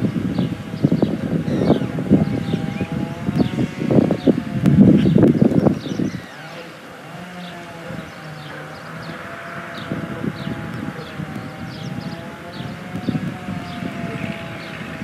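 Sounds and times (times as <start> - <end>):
small birds chirping: 0.0 - 15.0.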